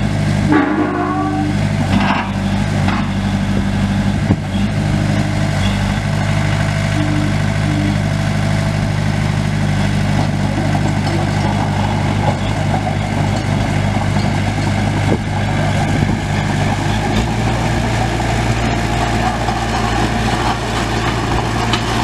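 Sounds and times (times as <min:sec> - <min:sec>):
diesel engine running steadily: 0:00.0 - 0:22.0.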